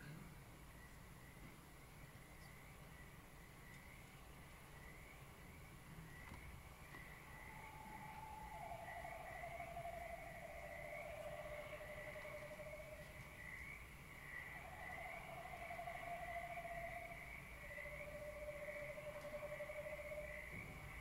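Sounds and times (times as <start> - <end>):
new-age electronic music: 7.3 - 13.4, 14.4 - 21.0.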